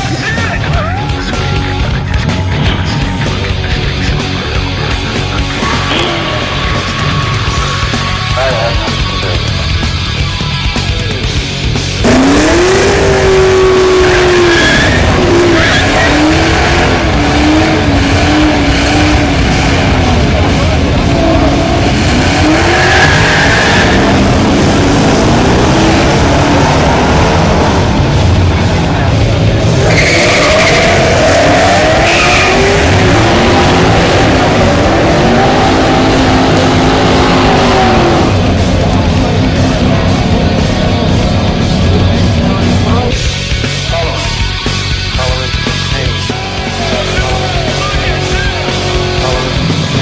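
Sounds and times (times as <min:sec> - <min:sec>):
car engine revving: 0:00.0 - 0:50.0
tire squeal: 0:05.4 - 0:10.7, 0:12.0 - 0:38.7
tyres squealing: 0:13.2 - 0:19.9, 0:29.6 - 0:38.2.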